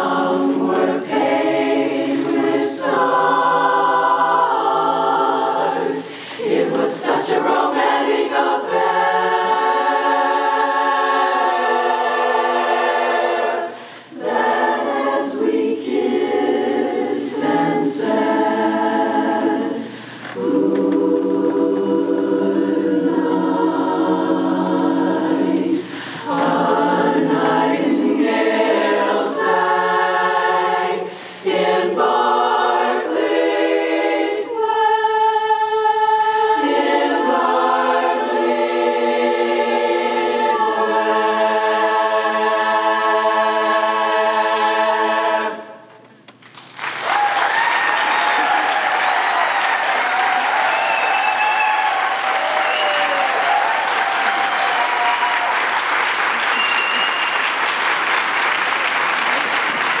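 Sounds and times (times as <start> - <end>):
women's a cappella chorus singing: 0.0 - 46.0
audience applause and cheering: 46.5 - 60.0.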